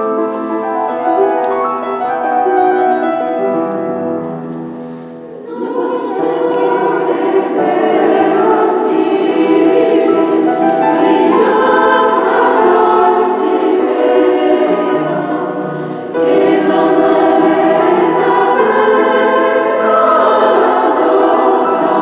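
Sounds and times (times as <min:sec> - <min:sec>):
mixed choir singing: 0:05.1 - 0:22.0.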